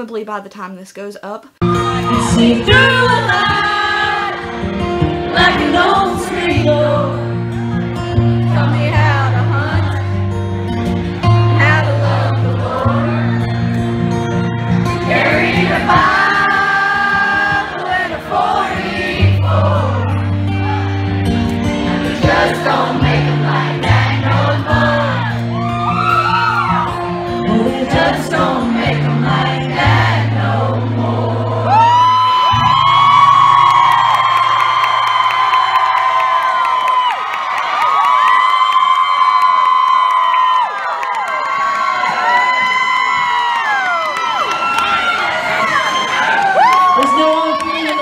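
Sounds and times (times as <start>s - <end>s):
crowd cheering: 1.6s - 8.4s, 10.9s - 48.0s
live country band: 1.6s - 36.0s
person singing: 5.2s - 7.5s, 27.4s - 32.3s.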